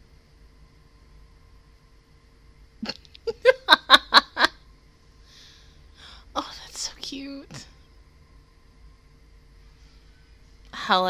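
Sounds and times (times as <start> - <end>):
woman laughing: 2.8 - 4.6.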